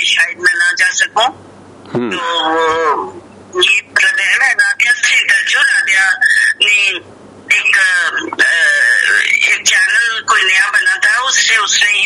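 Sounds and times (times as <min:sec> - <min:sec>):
person's drawn-out vowel: 0:01.9 - 0:03.2.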